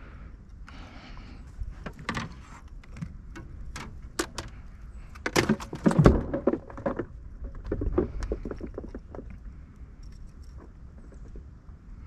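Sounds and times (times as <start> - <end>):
knocks of gear in a boat: 1.7 - 9.4.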